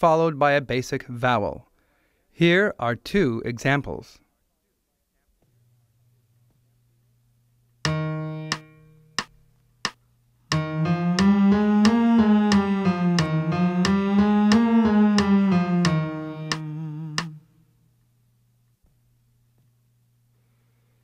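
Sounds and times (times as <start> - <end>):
piano playing scale pattern: 7.8 - 9.4, 10.5 - 17.5.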